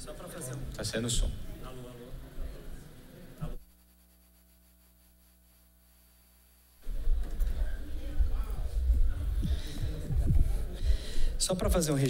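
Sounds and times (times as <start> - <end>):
faint electrical hum: 0.0 - 12.0
low rumbling microphone noise: 6.8 - 11.9.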